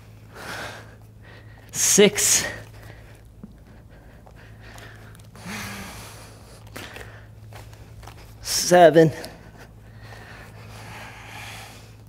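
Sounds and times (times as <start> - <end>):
person breathing hard: 0.0 - 8.0, 9.2 - 12.0.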